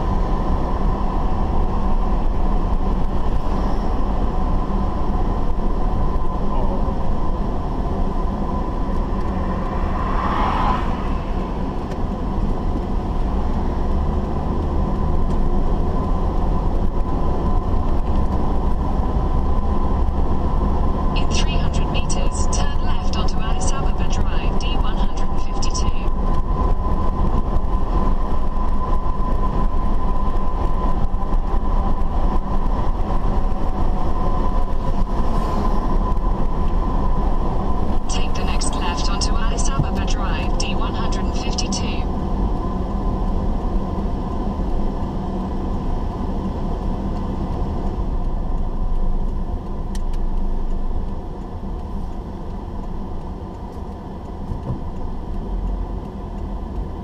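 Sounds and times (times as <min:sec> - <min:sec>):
car road and engine rumble: 0:00.0 - 0:57.0
faint steady whine: 0:21.1 - 0:35.2, 0:35.8 - 0:49.6.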